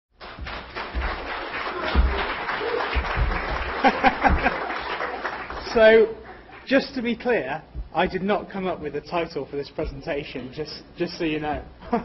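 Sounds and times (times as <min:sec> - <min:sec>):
audience applauding: 0:00.2 - 0:06.7
man laughing: 0:03.8 - 0:04.7, 0:11.8 - 0:12.0
man speaking: 0:05.6 - 0:11.8.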